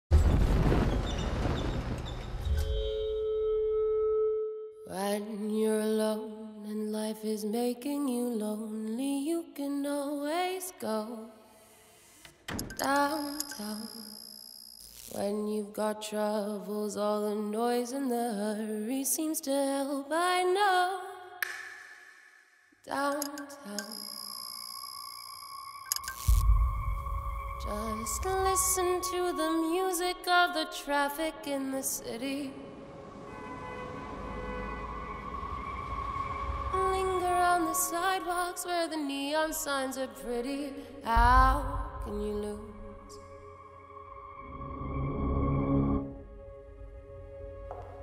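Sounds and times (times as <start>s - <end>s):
low rumble with crackling: 0.1s - 2.7s
short clicks: 12.2s - 14.1s
steady ringing tone: 12.9s - 15.1s, 23.8s - 29.2s.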